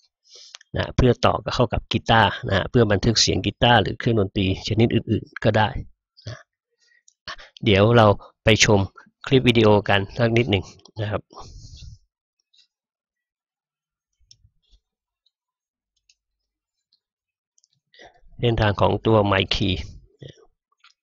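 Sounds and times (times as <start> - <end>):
person speaking: 0.7 - 5.9, 7.6 - 12.0, 18.4 - 20.4.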